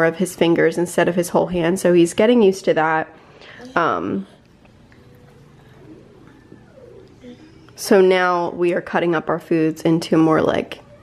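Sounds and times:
baby cooing: 0:05.1 - 0:07.8.

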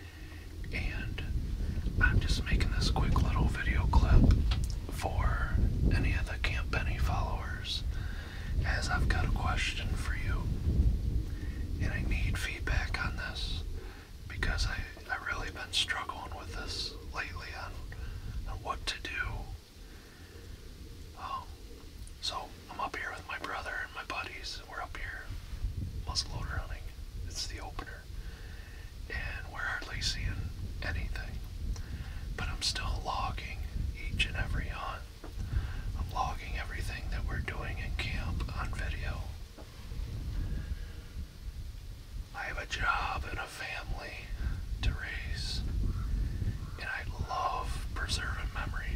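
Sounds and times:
man whispering: 0:00.0 - 0:41.0, 0:41.6 - 0:48.9
low rumble: 0:00.0 - 0:48.9.

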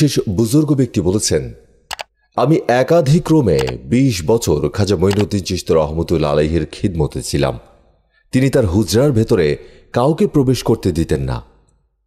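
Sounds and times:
person narrating: 0:00.0 - 0:11.6.

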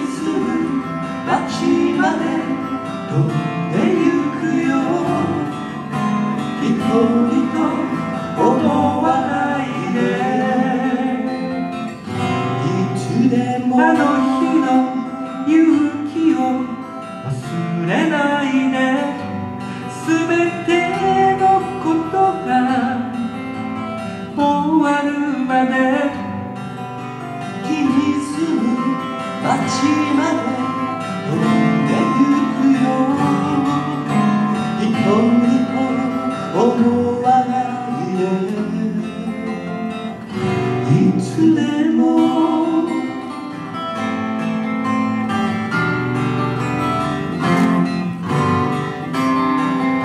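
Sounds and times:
man singing: 0:00.0 - 0:26.4, 0:27.4 - 0:43.8
acoustic guitars strummed and picked: 0:00.0 - 0:50.0.

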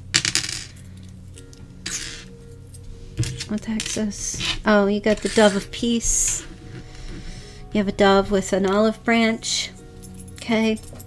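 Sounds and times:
faint background music: 0:00.0 - 0:11.0
metal charms clinking: 0:00.2 - 0:06.5, 0:09.7 - 0:11.0.

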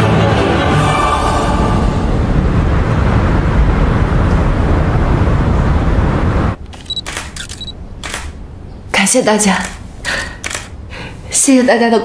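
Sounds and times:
rush of city noise: 0:00.2 - 0:12.0
camera shutter clicks: 0:06.7 - 0:08.4, 0:09.6 - 0:10.8
short high beep: 0:06.8 - 0:07.8.

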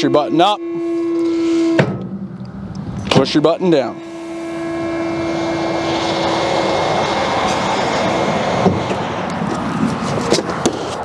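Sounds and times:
hydraulic pump whining: 0:00.0 - 0:11.0.

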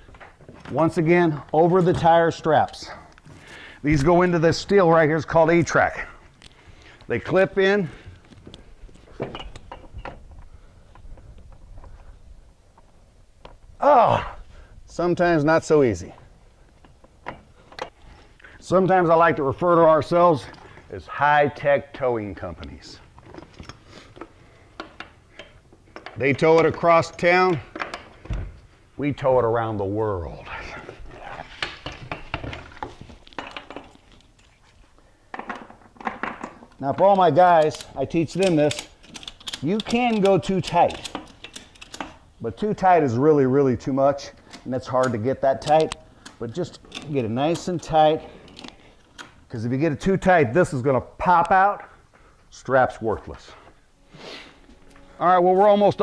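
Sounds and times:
light metal clicks and knocks: 0:16.7 - 0:18.0, 0:22.6 - 0:28.4, 0:35.3 - 0:42.2
metal strap hardware clicking: 0:36.7 - 0:42.3, 0:44.4 - 0:49.4.

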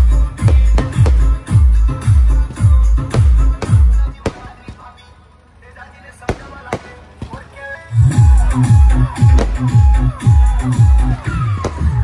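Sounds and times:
loud music with heavy bass beat: 0:00.0 - 0:04.2, 0:07.9 - 0:12.0
faint music: 0:00.0 - 0:12.0
fireworks bangs: 0:00.3 - 0:01.6, 0:02.3 - 0:05.1, 0:06.2 - 0:07.7, 0:09.2 - 0:10.0, 0:11.3 - 0:12.0
voices: 0:02.3 - 0:12.0.

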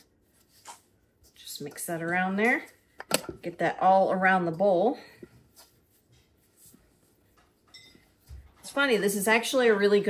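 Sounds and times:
hands kneading dough: 0:00.0 - 0:10.0.

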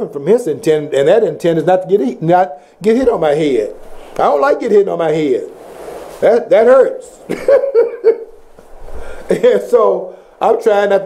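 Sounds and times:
man laughing: 0:07.3 - 0:08.4, 0:09.3 - 0:09.8.

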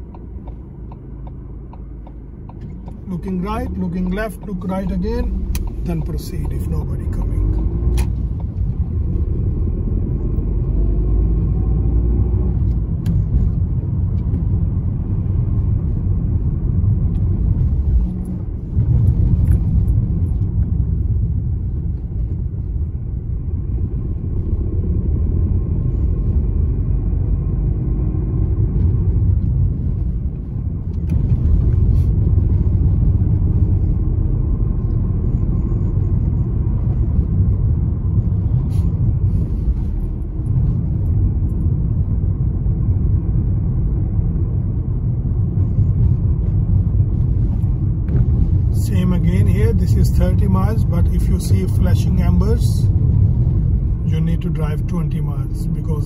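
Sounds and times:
car engine rumble: 0:00.0 - 0:56.0
road noise: 0:00.0 - 0:56.0.

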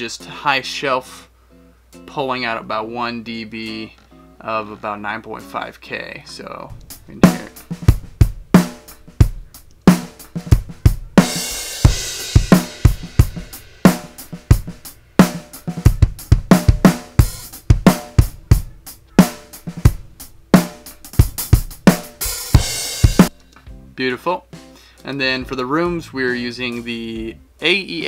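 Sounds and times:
drum kit groove: 0:06.5 - 0:28.0.

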